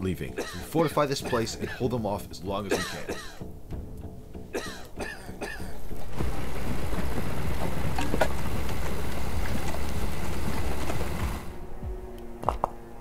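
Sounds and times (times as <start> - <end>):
half-track engine rumble: 3.5 - 12.2
track and running-gear noise: 5.7 - 12.9.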